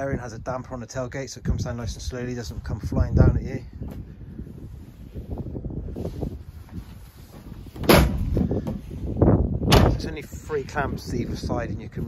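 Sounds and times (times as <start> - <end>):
tailgate slamming shut: 7.8 - 8.4, 9.7 - 10.1.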